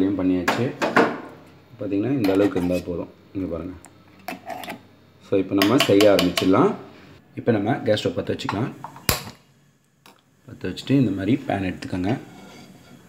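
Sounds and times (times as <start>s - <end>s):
person speaking: 1.8s - 3.8s.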